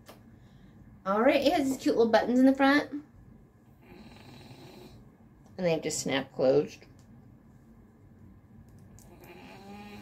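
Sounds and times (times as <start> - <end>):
dog snoring: 3.8 - 5.0, 9.0 - 10.0.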